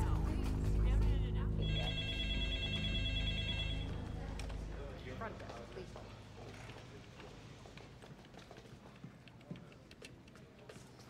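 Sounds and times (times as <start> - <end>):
telephone ringing: 1.6 - 4.8.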